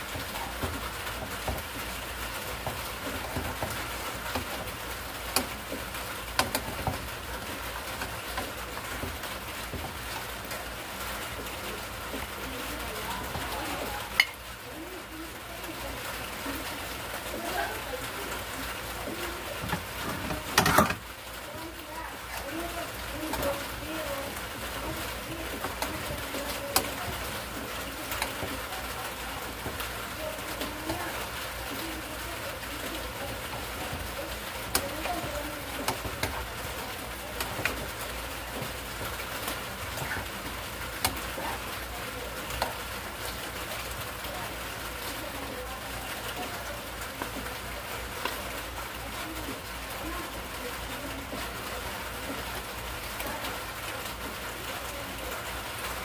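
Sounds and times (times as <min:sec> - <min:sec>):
food sizzling in a pan: 0:00.0 - 0:56.0.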